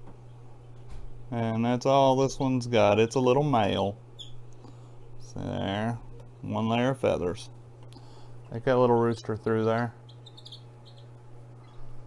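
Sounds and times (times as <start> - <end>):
steady low hum: 0.0 - 12.0
chick peeping: 10.1 - 11.8.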